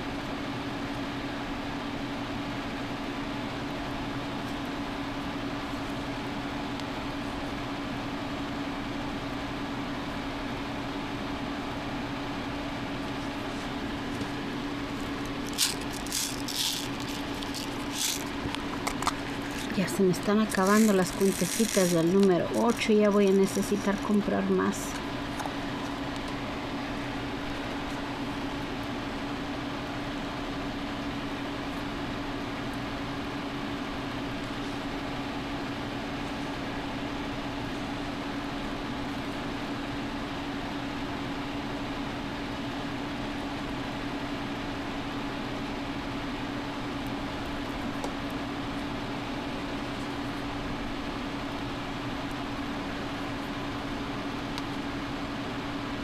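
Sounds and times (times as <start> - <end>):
steady mechanical hum: 0.0 - 56.0.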